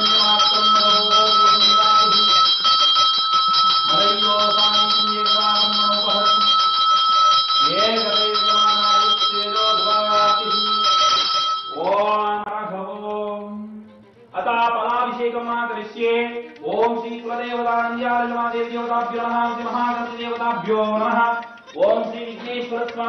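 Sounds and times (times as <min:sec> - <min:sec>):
man chanting: 0:00.0 - 0:02.5, 0:03.9 - 0:06.6, 0:07.6 - 0:10.9, 0:11.8 - 0:23.0
hand bell ringing rapidly: 0:00.0 - 0:12.0.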